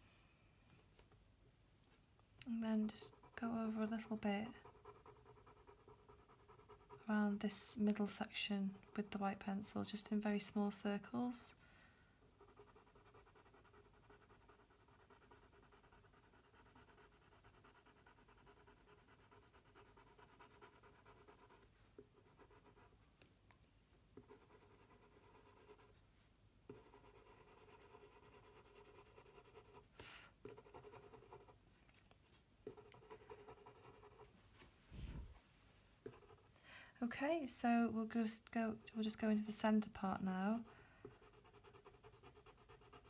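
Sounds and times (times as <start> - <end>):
pencil scratching on paper: 2.8 - 8.0, 12.4 - 22.9, 24.2 - 26.0, 26.7 - 31.6, 32.6 - 34.3, 36.0 - 36.5, 40.5 - 43.0.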